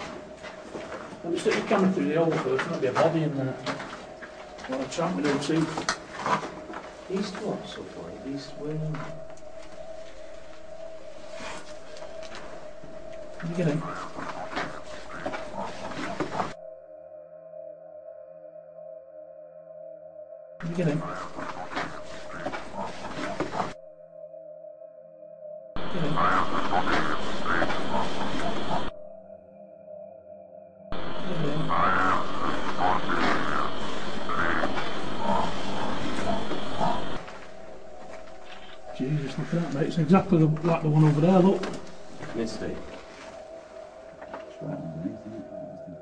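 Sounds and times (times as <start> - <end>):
recording hiss: 0.0 - 16.6, 25.8 - 28.9, 31.0 - 46.0
ambient music drone: 0.0 - 46.0
person speaking: 1.2 - 4.0, 4.6 - 5.9, 7.1 - 9.2, 13.4 - 16.3, 20.6 - 23.6, 31.2 - 34.5, 38.8 - 43.0
animal-like grunt: 25.8 - 28.9, 31.2 - 37.3.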